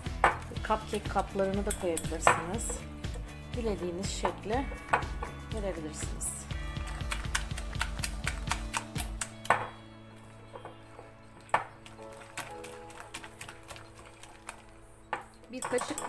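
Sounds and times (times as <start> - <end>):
quiet background music: 0.0 - 16.0
spoon stirring batter in glass bowl: 6.5 - 9.8, 10.7 - 16.0.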